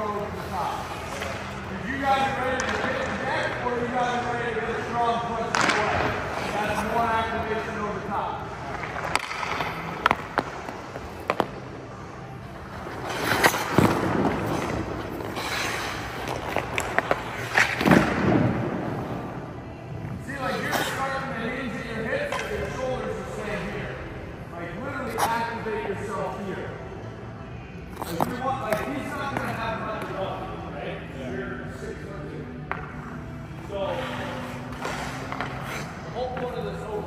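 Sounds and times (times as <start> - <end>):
voices in rink: 0.0 - 37.0
hockey stick clacking pucks: 2.2 - 3.3, 5.4 - 6.9, 8.7 - 11.6, 12.9 - 18.5, 22.2 - 22.8, 34.7 - 36.6
skate blades scraping ice: 12.7 - 18.2, 33.9 - 36.4.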